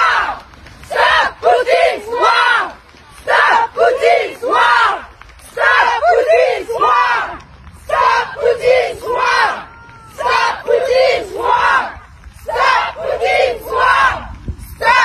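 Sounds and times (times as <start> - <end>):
women chanting slogan: 0.0 - 15.0.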